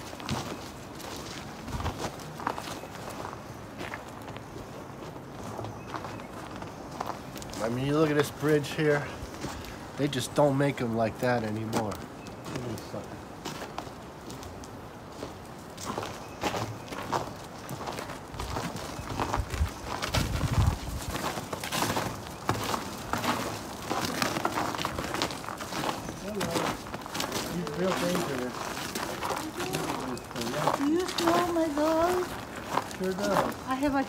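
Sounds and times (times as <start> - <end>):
footsteps on snow: 0.0 - 10.5, 11.5 - 34.0.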